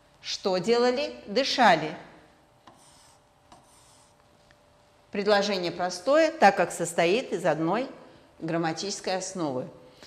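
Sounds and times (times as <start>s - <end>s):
pen rubbing on whiteboard: 2.7s - 4.2s.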